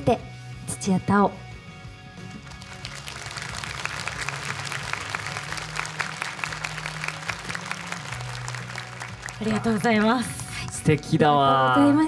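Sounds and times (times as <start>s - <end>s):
soft background music: 0.0s - 12.0s
audience applause: 2.3s - 11.1s.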